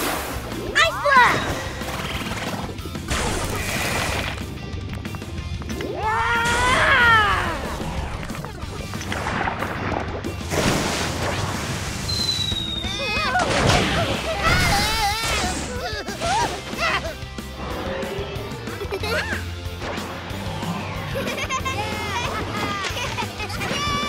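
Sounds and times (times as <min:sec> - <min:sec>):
cartoon background music: 0:00.0 - 0:24.0.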